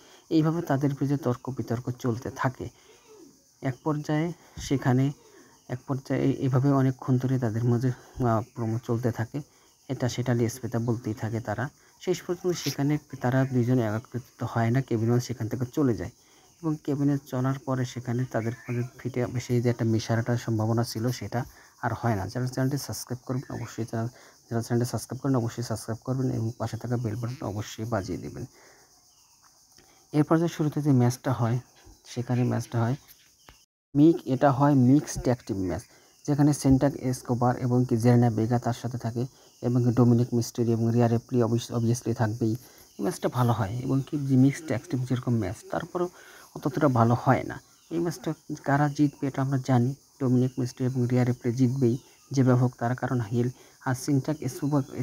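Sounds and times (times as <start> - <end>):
man talking: 0.0 - 3.0, 3.6 - 28.5, 30.1 - 33.1, 34.0 - 55.0
man speaking: 0.0 - 28.5, 30.2 - 33.1, 34.0 - 55.0
faint high-pitched hiss: 0.0 - 55.0.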